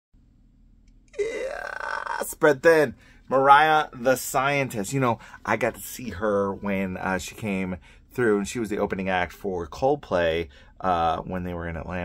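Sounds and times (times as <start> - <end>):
man's drawn-out vocal sound: 1.2 - 3.0.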